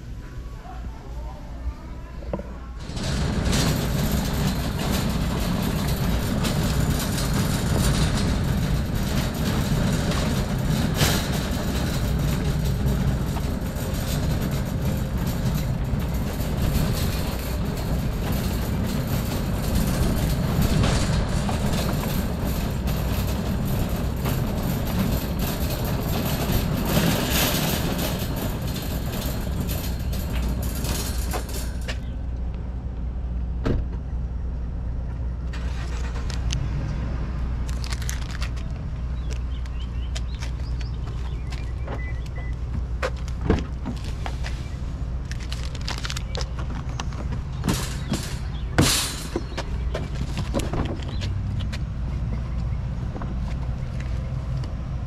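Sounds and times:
shopping cart rattling on asphalt: 2.8 - 32.3, 35.6 - 36.4, 37.7 - 41.8, 43.1 - 51.6.

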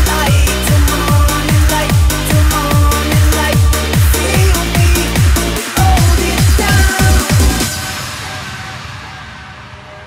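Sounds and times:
held synth chords: 0.0 - 10.0.

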